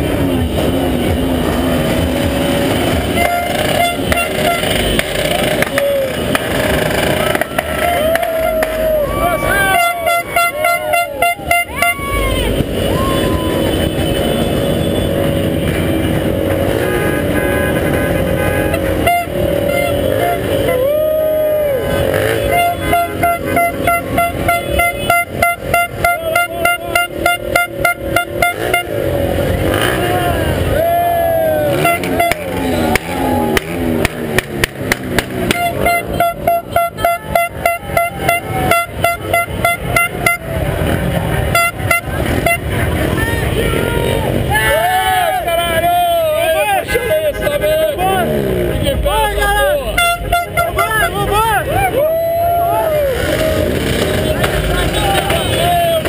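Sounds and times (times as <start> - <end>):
car horns honking: 0.0 - 52.0, 53.0 - 56.0
people's voices: 0.0 - 56.0.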